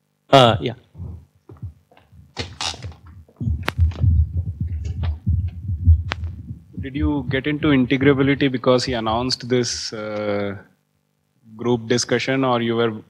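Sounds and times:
microphone handling thumps: 0:00.8 - 0:09.4.

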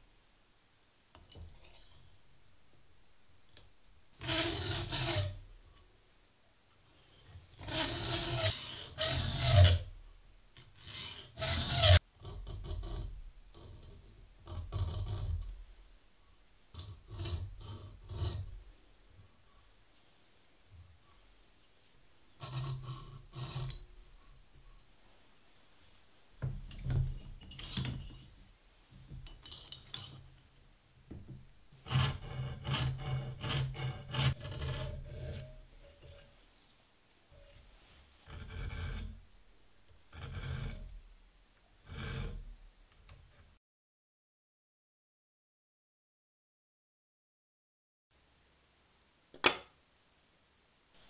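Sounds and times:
files scraping steel: 0:04.2 - 0:05.5, 0:07.0 - 0:09.9, 0:10.6 - 0:15.6, 0:16.7 - 0:18.7, 0:22.3 - 0:24.8, 0:31.8 - 0:36.4, 0:37.4 - 0:39.2, 0:40.1 - 0:41.0.

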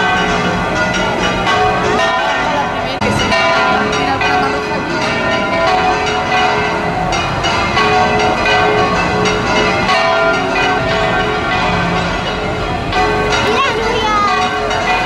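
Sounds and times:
church bells ringing: 0:00.0 - 0:15.0.

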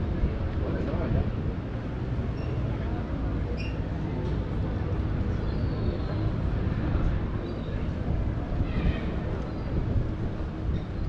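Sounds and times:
faint outdoor ambience: 0:00.0 - 0:11.0
wind buffeting microphone: 0:00.0 - 0:11.0.

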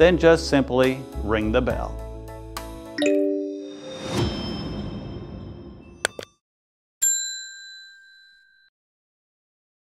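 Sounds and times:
bright bell ding: 0:07.0 - 0:08.7.

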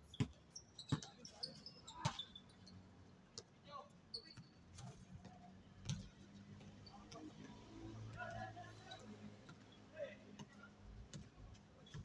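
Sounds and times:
basketball bouncing on hard court: 0:11.1 - 0:12.0.

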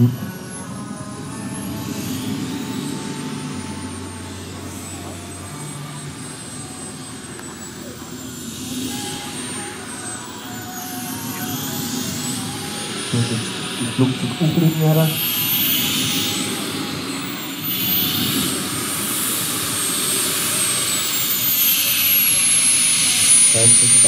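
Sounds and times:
model jet turbine whine: 0:00.0 - 0:24.0
steady rushing hiss: 0:00.0 - 0:24.0.

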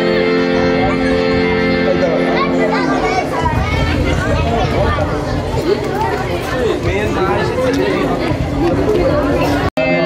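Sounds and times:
harmonium chord: 0:00.0 - 0:03.5
chatter of many voices: 0:00.0 - 0:10.0.

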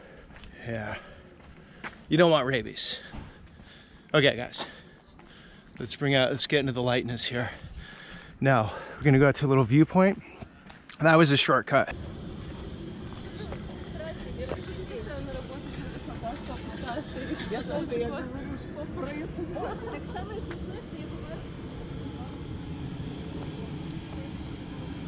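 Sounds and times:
low outdoor rumble: 0:11.8 - 0:25.0
distant people talking: 0:12.4 - 0:25.0.

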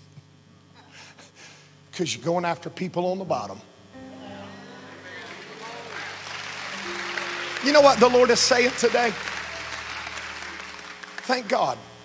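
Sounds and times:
steady low hum: 0:00.0 - 0:12.0
congregation applauding: 0:04.0 - 0:12.0.

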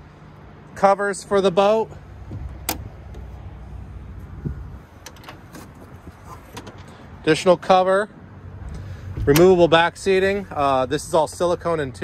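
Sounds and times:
low handling rumble: 0:01.9 - 0:07.0, 0:08.4 - 0:12.0.

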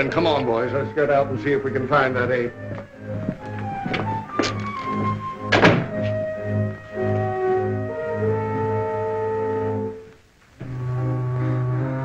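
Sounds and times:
film score with pulsing low note: 0:00.0 - 0:12.0
footsteps: 0:01.6 - 0:07.4
knocks: 0:05.5 - 0:06.0
door shutting with a thud: 0:05.5 - 0:06.1.

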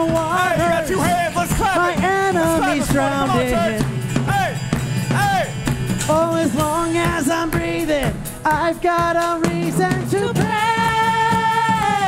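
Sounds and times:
held bass note: 0:00.0 - 0:10.4
acoustic guitar: 0:00.0 - 0:12.0
drum kit: 0:00.0 - 0:12.0
person singing: 0:00.0 - 0:12.0.

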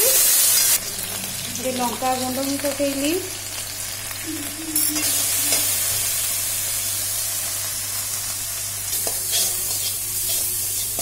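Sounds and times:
spices sizzling in hot oil: 0:00.0 - 0:11.0
metal spatula scraping: 0:08.9 - 0:11.0.

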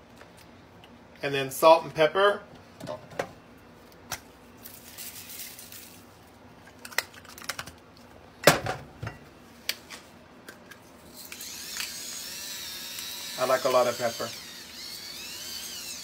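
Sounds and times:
pepper grinder whirring: 0:11.1 - 0:16.0.

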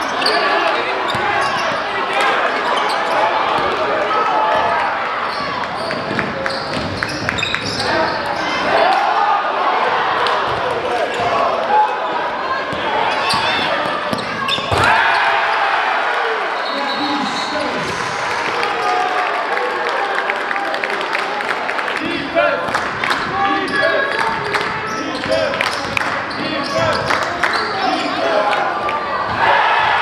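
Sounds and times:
crowd voices: 0:00.0 - 0:30.0
players shouting: 0:07.7 - 0:25.6, 0:26.3 - 0:30.0.

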